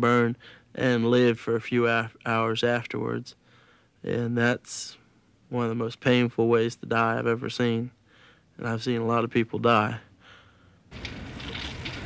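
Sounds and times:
fire burning and crackling: 10.9 - 12.0.

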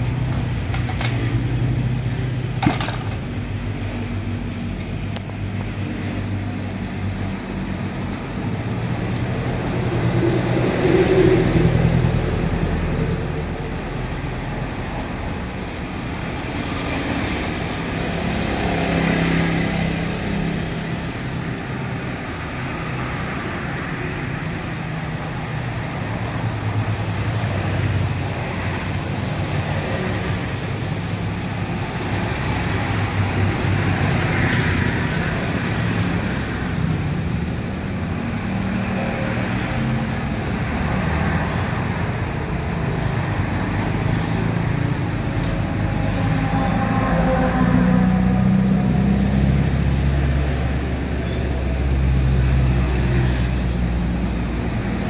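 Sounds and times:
traffic engines humming: 0.0 - 55.0.

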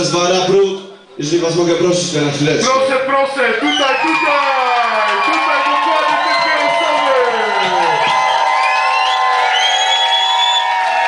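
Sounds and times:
crowd cheering and whooping: 3.6 - 11.0.

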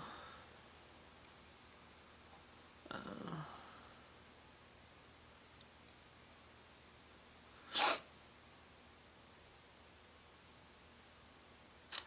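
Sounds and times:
sharp breath through nose: 7.6 - 8.1.

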